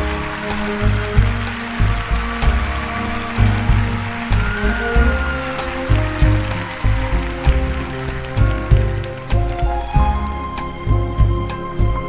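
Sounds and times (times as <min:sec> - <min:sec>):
audience applause: 0:00.0 - 0:10.9
strong bass beat: 0:00.0 - 0:11.5.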